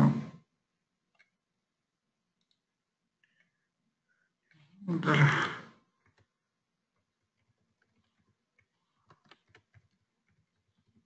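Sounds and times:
computer mouse clicks: 7.4 - 11.0.

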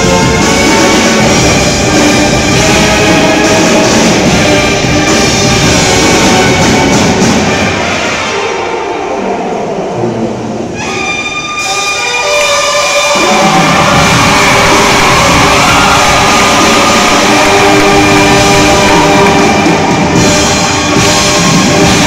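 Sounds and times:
marching band brass chords: 0.0 - 22.0.

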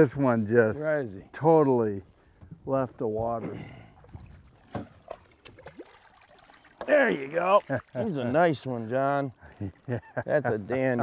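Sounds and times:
short sharp splashes: 4.0 - 8.2
fish splashing in water: 4.1 - 8.0
man speaking: 6.8 - 9.4, 10.2 - 11.0.

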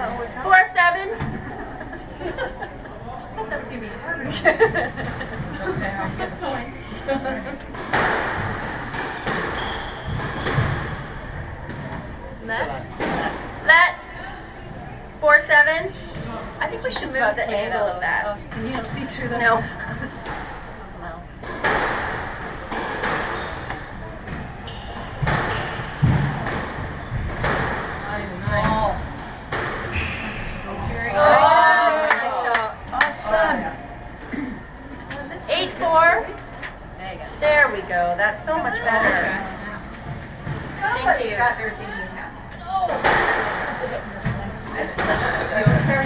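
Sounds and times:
squash ball hits echoing: 7.6 - 12.1, 21.4 - 31.4, 42.7 - 46.0.

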